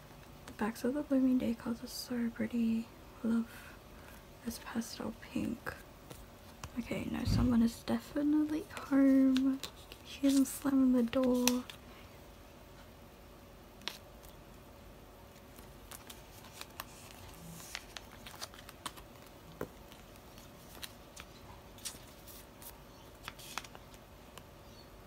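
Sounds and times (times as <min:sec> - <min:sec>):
plastic card sleeves crinkling: 0:06.0 - 0:11.8, 0:13.8 - 0:14.4, 0:15.2 - 0:24.5.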